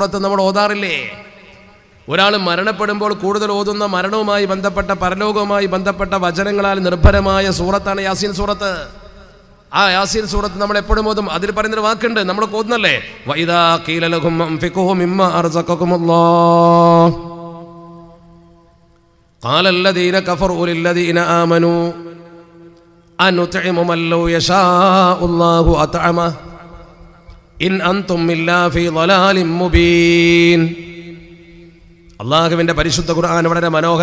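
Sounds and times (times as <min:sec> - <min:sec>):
man chanting through pa system: 0:00.0 - 0:18.6, 0:19.4 - 0:22.6, 0:23.2 - 0:34.0
long echo: 0:00.0 - 0:34.0.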